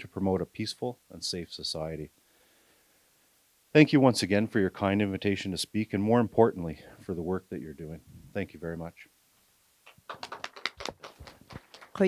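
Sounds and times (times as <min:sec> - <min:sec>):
sharp taps and clicks: 0:09.8 - 0:12.0.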